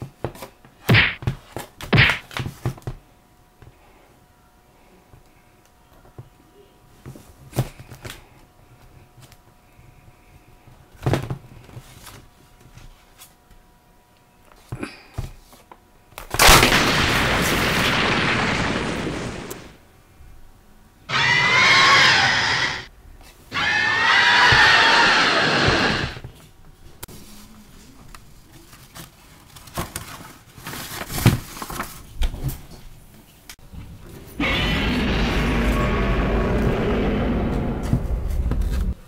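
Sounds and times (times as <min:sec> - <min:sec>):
screeching monster roars: 0:21.1 - 0:22.9, 0:23.5 - 0:26.2, 0:34.1 - 0:39.0.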